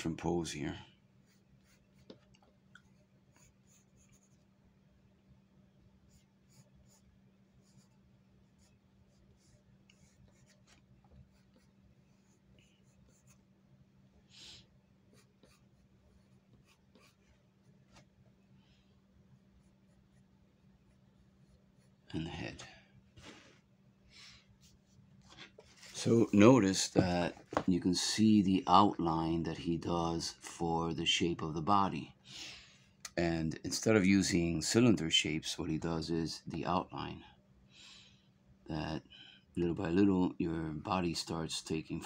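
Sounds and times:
steady low hum: 0.0s - 42.0s
pencil scratching on paper: 1.2s - 2.2s, 2.9s - 4.4s, 6.1s - 13.4s, 15.1s - 17.4s.

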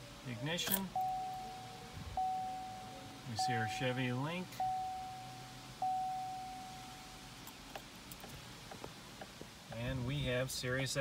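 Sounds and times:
car warning chime: 0.4s - 7.4s.

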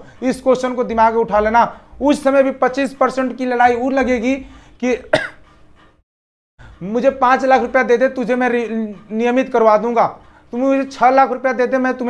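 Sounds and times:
man speaking: 0.0s - 5.3s, 6.8s - 12.0s
man clearing his throat: 4.9s - 5.5s.

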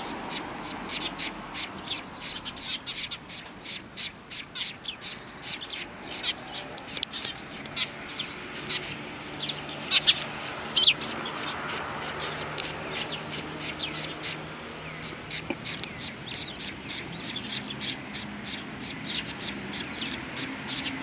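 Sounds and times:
sparrows chirping: 0.0s - 21.0s.

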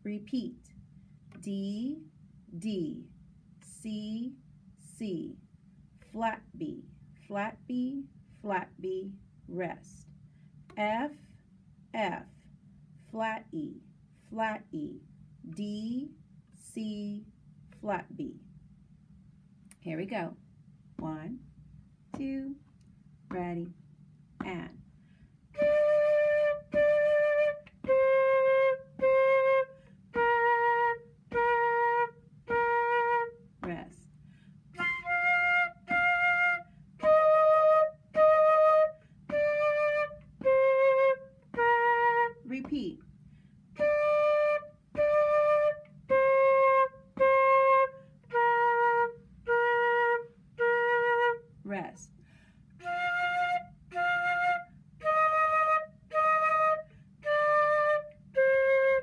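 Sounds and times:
flute playing simple melody: 25.5s - 33.5s, 34.7s - 42.5s, 43.8s - 51.5s, 52.8s - 59.0s
quick breaths: 34.1s - 34.7s, 52.2s - 52.8s.

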